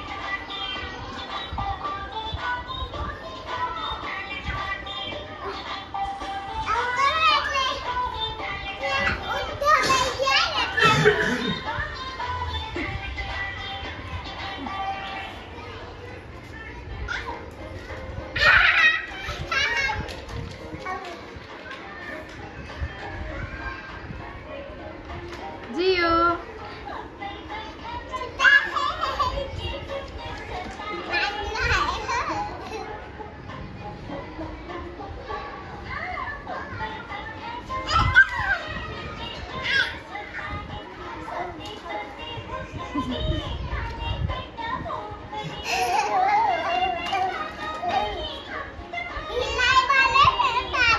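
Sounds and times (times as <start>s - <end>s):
children shrieking and chattering: 3.9s - 13.3s, 13.9s - 24.9s, 26.2s - 50.9s.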